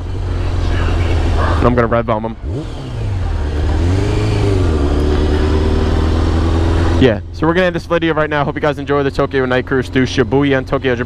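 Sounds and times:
motorcycle engine: 0.0s - 11.0s.

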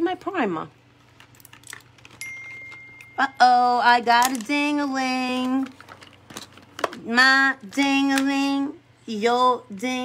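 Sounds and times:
small items clinking: 1.0s - 7.0s
high ding: 2.2s - 3.5s.

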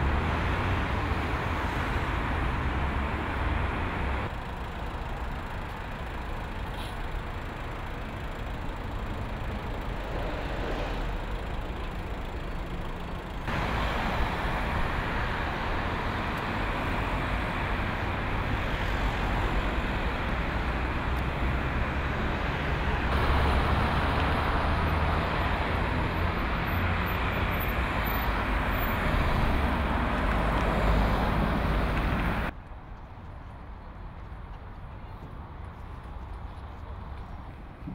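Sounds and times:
cars driving through intersection: 0.0s - 32.6s.

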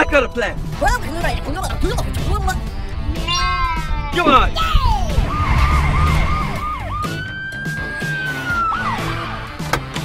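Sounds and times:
background music: 0.0s - 10.0s
police siren wailing: 5.2s - 9.5s.

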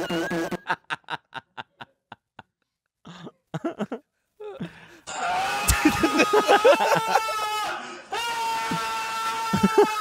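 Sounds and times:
men laughing: 0.0s - 2.5s, 3.1s - 10.0s.

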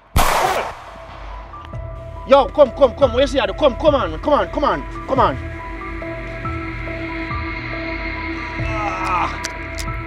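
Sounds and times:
gunshot echoing: 0.0s - 1.4s
background music sustained notes: 0.0s - 10.0s.

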